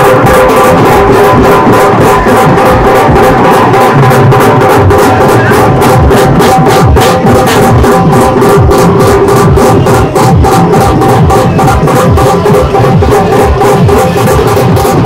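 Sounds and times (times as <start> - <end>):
deep bass drum hits: 0.0 - 15.0
dhol drums beaten fast: 0.0 - 15.0.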